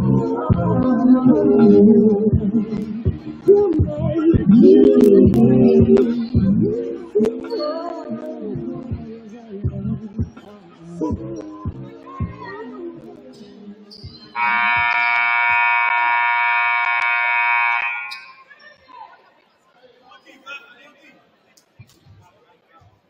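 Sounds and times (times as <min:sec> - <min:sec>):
background music: 0:00.0 - 0:16.0
voices: 0:00.0 - 0:23.0
scoreboard horn: 0:14.4 - 0:18.2.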